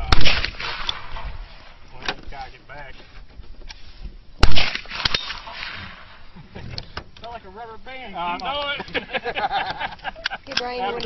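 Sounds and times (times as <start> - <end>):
gunshot crack with echo: 0.0 - 1.7, 4.4 - 6.2.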